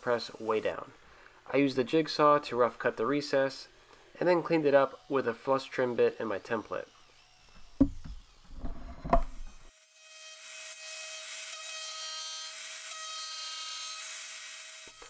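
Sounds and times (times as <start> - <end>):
jigsaw cutting wood: 7.1 - 15.0
sharp knocks: 7.8 - 8.2.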